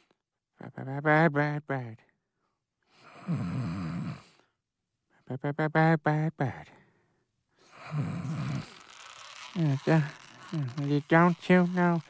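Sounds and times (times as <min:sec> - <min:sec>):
man snoring: 0:03.0 - 0:04.4, 0:07.7 - 0:12.0.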